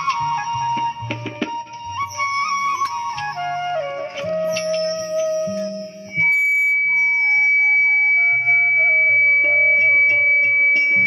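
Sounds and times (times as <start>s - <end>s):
bamboo flute melody: 0.0s - 11.0s
steady high held tone: 4.5s - 11.0s.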